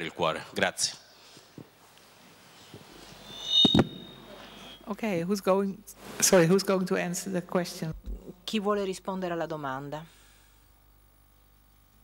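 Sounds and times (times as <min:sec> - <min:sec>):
faint high whistle: 0:03.2 - 0:04.9.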